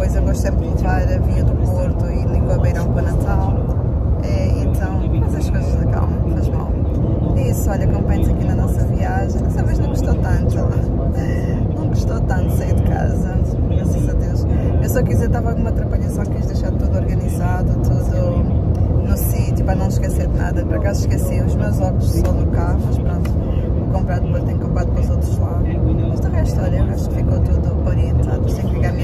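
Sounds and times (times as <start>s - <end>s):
car cabin road rumble: 0.0s - 29.0s
woman talking: 0.0s - 29.0s.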